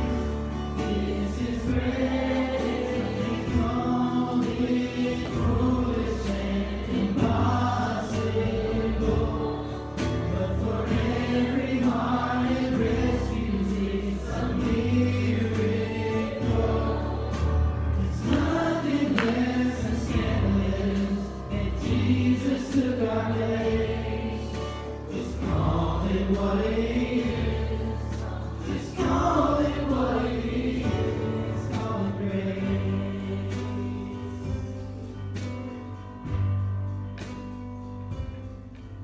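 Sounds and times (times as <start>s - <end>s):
choir singing worship song: 0.0s - 36.4s
electric bass notes: 0.0s - 39.0s
steady percussive beat: 0.0s - 39.0s.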